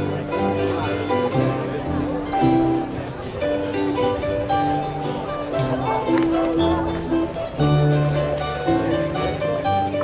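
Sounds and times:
accordion: 0.0s - 10.0s
double bass: 0.0s - 10.0s
guitar: 0.0s - 10.0s
hammered dulcimer: 0.0s - 10.0s.

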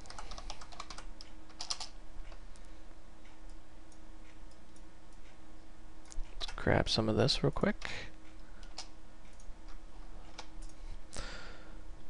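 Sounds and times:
typing on computer keyboard: 0.0s - 2.0s
faint steady hum: 0.0s - 12.0s.

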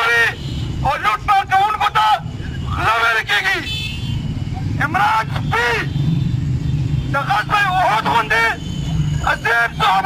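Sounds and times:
man shouting through a megaphone: 0.0s - 6.2s, 7.1s - 10.0s
low rumble of street traffic: 0.0s - 10.0s.

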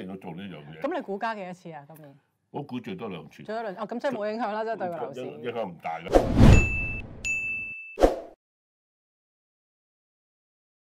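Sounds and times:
bell-like ding: 6.5s - 8.0s.

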